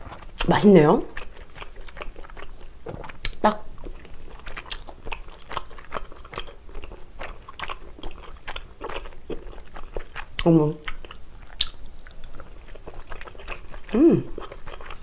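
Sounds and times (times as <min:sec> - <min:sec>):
wet chewing: 0:00.0 - 0:15.0.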